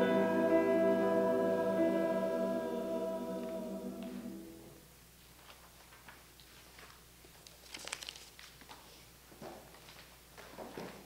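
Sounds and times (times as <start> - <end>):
church choir holding chord: 0.0 - 4.8.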